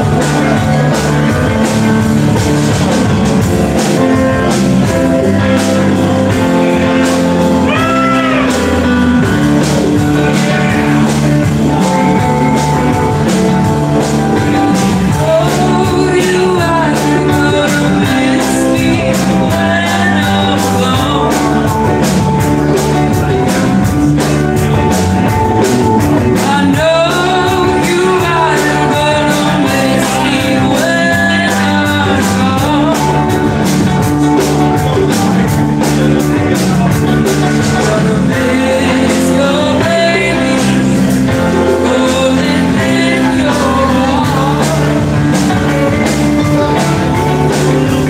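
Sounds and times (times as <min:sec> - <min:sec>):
live band playing: 0:00.0 - 0:48.0
person singing: 0:03.1 - 0:48.0.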